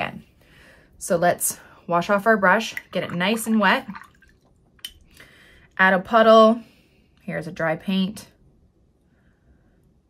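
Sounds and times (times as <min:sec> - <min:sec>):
brush swishing in water jar: 0:02.4 - 0:04.3.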